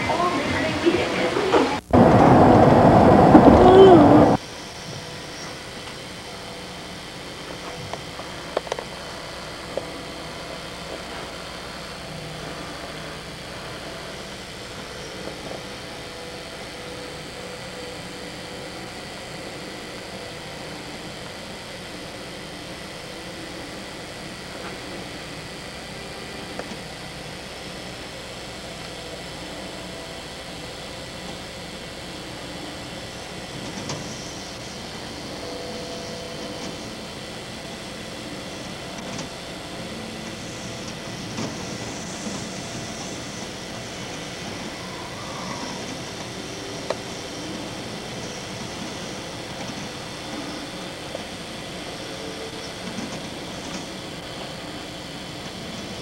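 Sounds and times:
strong wind rushing: 0.0s - 4.4s
heavy rain: 0.0s - 6.2s.

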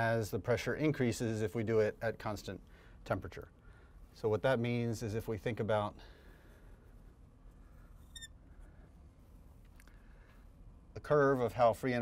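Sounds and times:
faint room hum: 0.0s - 12.0s
marker squeaking on glass: 8.0s - 8.4s.

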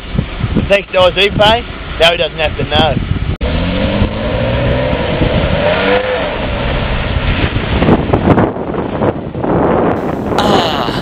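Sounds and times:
car engine revving hard: 3.4s - 7.6s.

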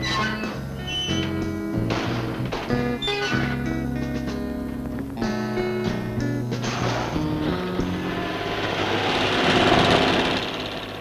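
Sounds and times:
heavy construction machinery: 6.6s - 11.0s.

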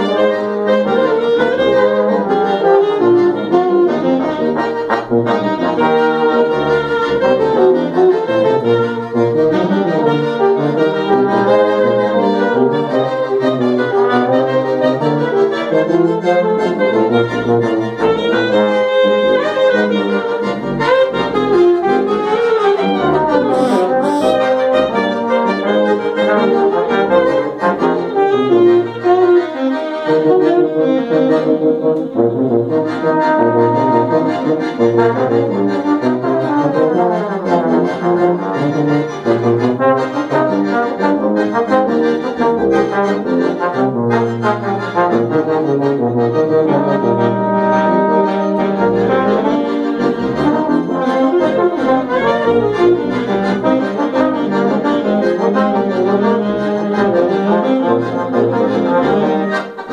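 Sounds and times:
accordion: 0.0s - 59.9s
saxophone: 0.0s - 59.9s
trombone: 0.0s - 59.9s
tuba bass notes: 0.0s - 59.9s.

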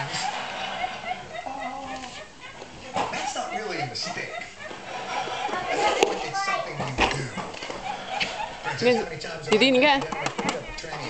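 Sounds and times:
indistinct background voices: 0.0s - 11.0s.

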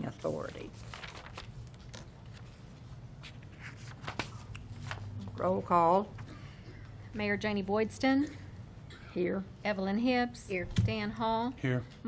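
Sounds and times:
low room hum: 0.0s - 12.0s
papers rustling and tapping: 0.4s - 2.6s, 3.2s - 5.4s.

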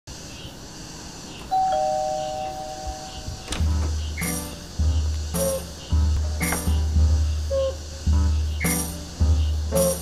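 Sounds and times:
two-note doorbell chime: 1.5s - 3.4s.

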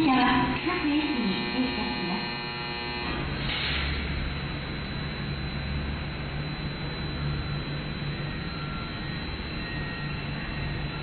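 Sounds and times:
woman's station announcement: 0.0s - 2.4s
electric train motors buzzing: 0.0s - 11.0s.

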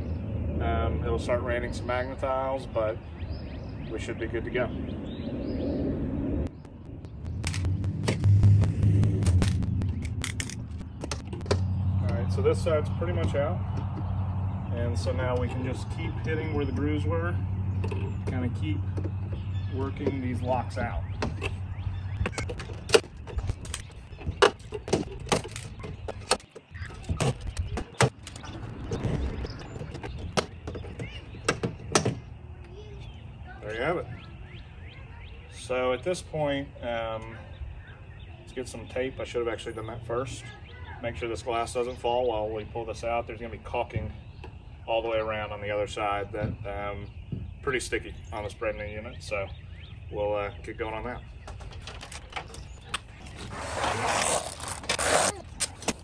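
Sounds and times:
steady low rumble: 3.0s - 30.7s.

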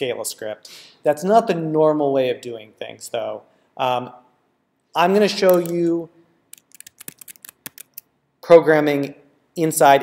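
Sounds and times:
keyboard keys clicking: 5.5s - 5.8s, 6.6s - 8.0s.

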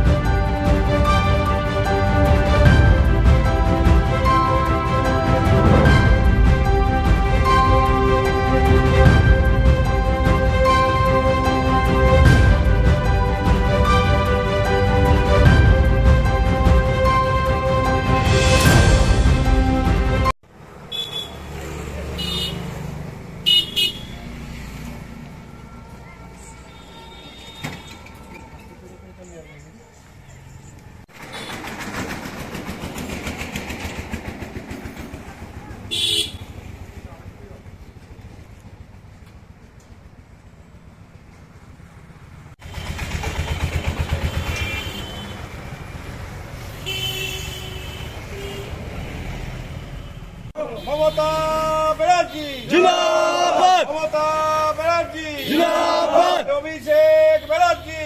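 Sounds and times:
road traffic: 0.0s - 58.0s
vehicle engine running: 41.9s - 45.3s.

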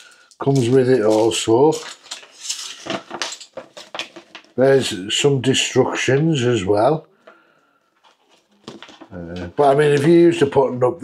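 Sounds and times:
paper rustling: 0.0s - 4.6s, 8.0s - 10.6s.

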